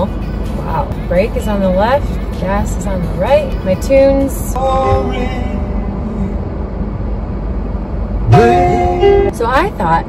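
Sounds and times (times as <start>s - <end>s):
car engine idling: 0.0s - 10.0s
voice with drawn-out note: 8.2s - 10.0s.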